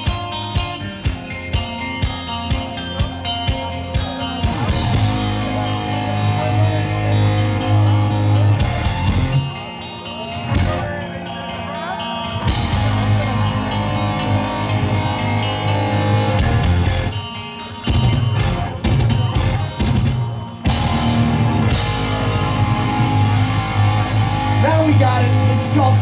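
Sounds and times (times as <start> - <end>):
heavy metal band playing: 0.0 - 26.0.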